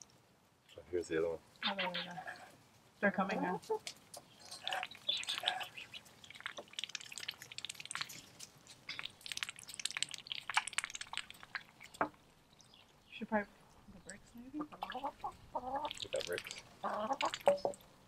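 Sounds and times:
water dripping into plastic pool: 4.1 - 18.0.

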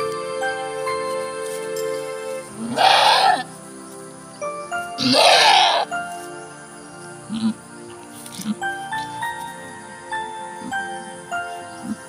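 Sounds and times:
background music: 0.0 - 12.0
goat bleating loudly: 2.6 - 3.4.

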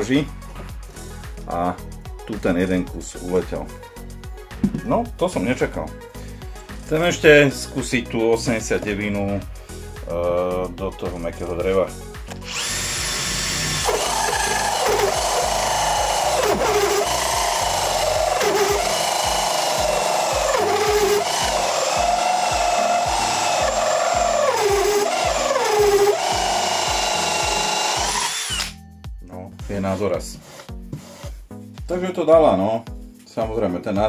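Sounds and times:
drill with hole saw cutting wood: 12.4 - 28.8.

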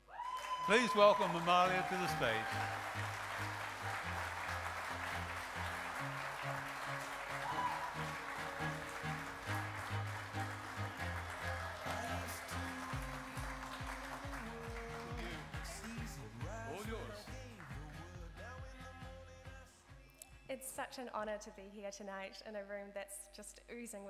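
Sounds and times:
audience applauding: 0.0 - 18.2
music with steady bass line: 2.6 - 19.7.

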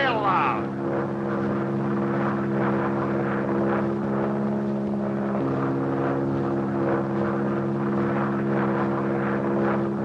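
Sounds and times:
propeller plane engine running: 0.0 - 10.0.

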